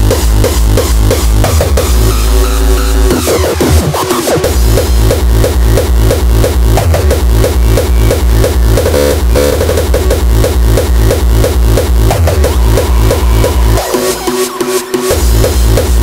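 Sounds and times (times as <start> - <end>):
fast kick drum: 0.0 - 2.4, 3.0 - 16.0
hardcore electronic dance music: 0.0 - 16.0.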